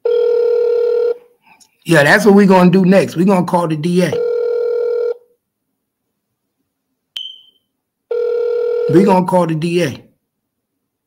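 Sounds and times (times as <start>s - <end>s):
phone ringback tone: 0.0s - 1.2s, 4.1s - 5.2s, 7.2s - 9.2s
sharp click with high ping: 7.2s - 7.6s.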